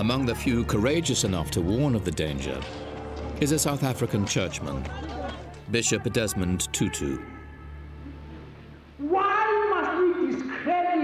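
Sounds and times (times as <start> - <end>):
man shouting through loudspeakers: 3.4 - 7.5.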